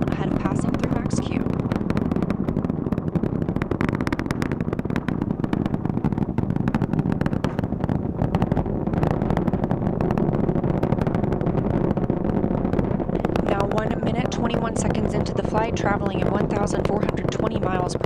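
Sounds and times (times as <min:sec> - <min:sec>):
rocket engines crackling rumble: 0:00.0 - 0:18.0.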